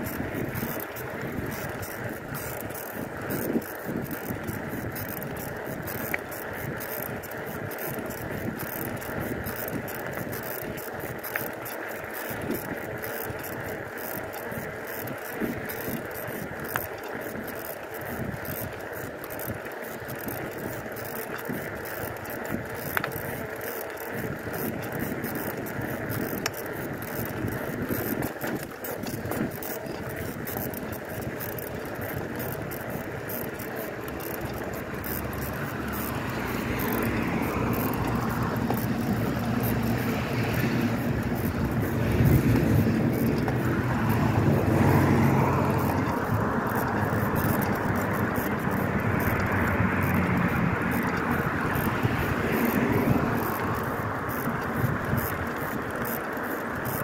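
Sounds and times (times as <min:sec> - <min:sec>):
bicycle tyres rolling on pavement: 0:00.0 - 0:57.0
sharp clicks: 0:00.0 - 0:57.0.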